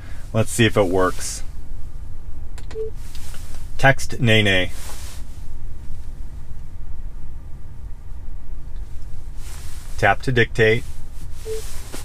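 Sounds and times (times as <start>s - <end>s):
low rumble inside car cabin: 0.0s - 12.0s.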